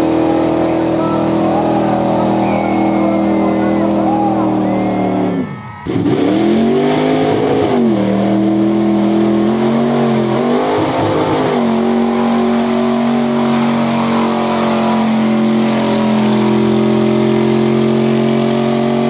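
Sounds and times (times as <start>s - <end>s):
truck engine revving in mud: 0.0s - 19.0s.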